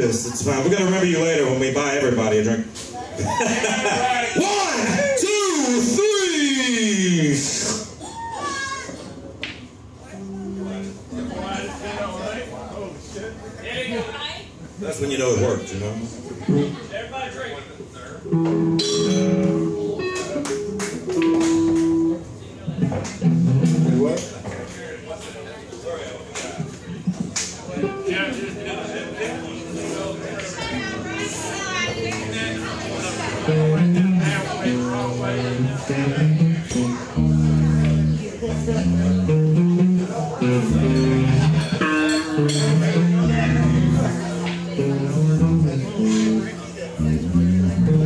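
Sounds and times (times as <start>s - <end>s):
crowd chatter: 0.0s - 48.0s
guitar chords and notes: 16.5s - 16.8s, 18.3s - 24.3s, 27.8s - 48.0s.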